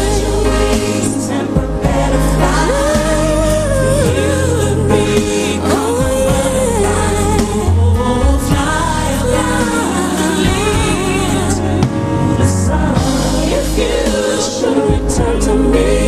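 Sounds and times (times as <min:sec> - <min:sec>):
backing singers: 0:00.0 - 0:16.0
slow band accompaniment: 0:00.0 - 0:16.0
woman singing: 0:00.0 - 0:16.0.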